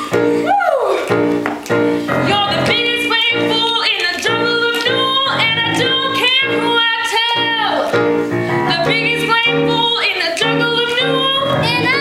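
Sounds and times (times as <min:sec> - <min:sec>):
instrumental accompaniment: 0:00.0 - 0:12.0
woman singing: 0:02.1 - 0:08.0, 0:08.6 - 0:12.0.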